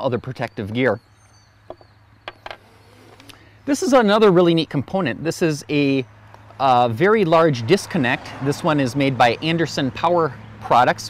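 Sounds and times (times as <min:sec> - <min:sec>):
faint bird chirps: 0:00.4 - 0:03.6.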